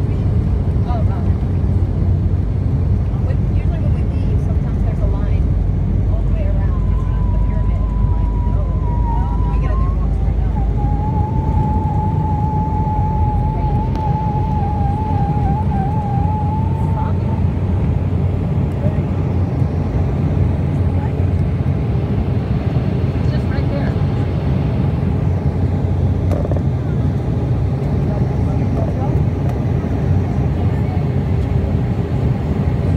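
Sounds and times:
jet engines rumbling: 0.0 - 32.9.

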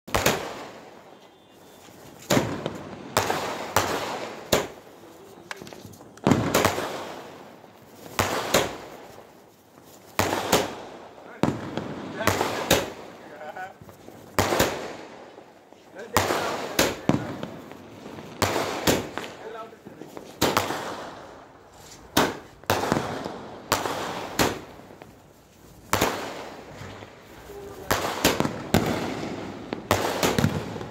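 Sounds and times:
firework bangs: 0.1 - 30.9.

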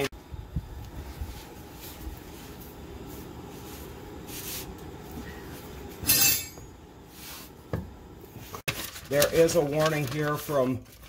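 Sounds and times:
metallic clank: 6.0 - 6.7.

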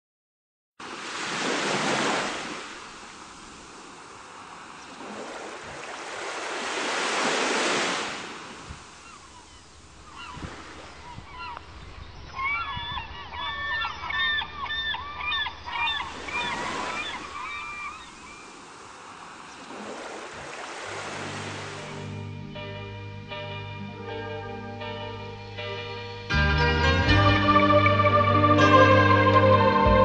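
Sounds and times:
sea waves surging: 0.8 - 11.4, 15.6 - 26.3
gulls calling: 2.5 - 26.0.

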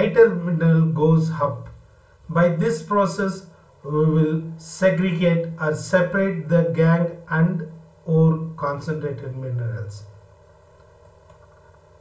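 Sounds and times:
faint background hum and hiss: 0.0 - 12.0.

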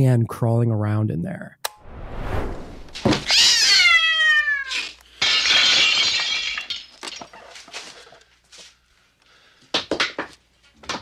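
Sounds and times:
cat screeching yowl: 3.1 - 5.0
glass shattering: 5.1 - 7.9.

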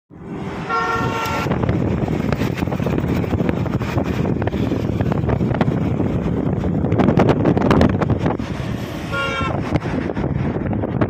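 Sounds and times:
moving vehicle rumble: 0.1 - 11.0
vehicle horn: 0.6 - 1.6, 9.1 - 9.7.

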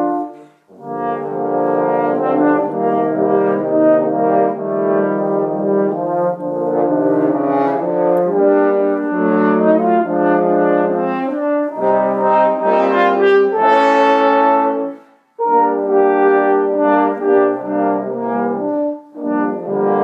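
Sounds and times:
french horn quartet playing chords: 0.0 - 20.0.

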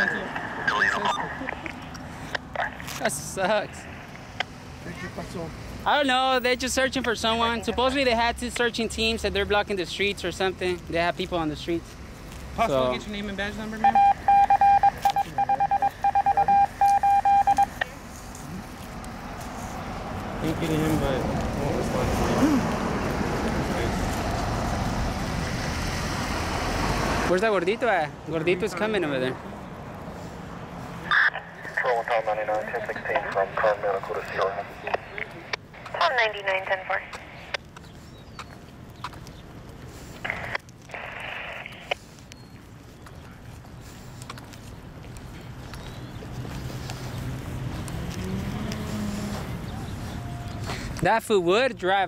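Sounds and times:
radio scanner static bursts: 0.0 - 1.8, 13.2 - 18.0, 31.0 - 37.6, 40.2 - 42.0
radio morse code beeps: 13.8 - 17.9.

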